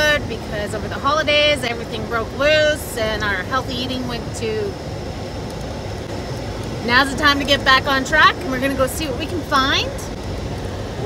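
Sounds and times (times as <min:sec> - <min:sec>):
car cabin rumble and hiss: 0:00.0 - 0:11.0.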